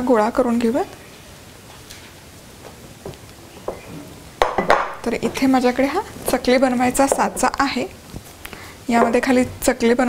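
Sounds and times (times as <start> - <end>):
glass bowl clattering and scraping: 4.6 - 7.9.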